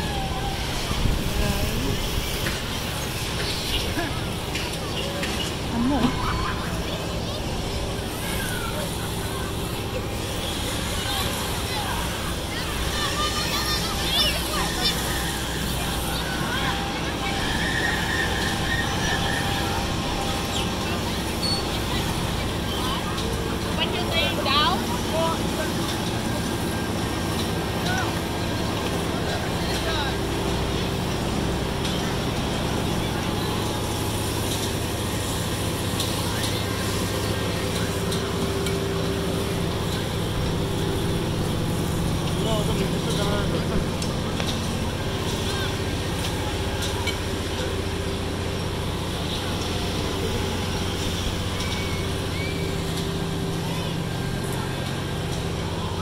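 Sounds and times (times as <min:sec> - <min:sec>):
low mechanical hum of machinery: 0:00.0 - 0:56.0
people's voices: 0:00.0 - 0:56.0.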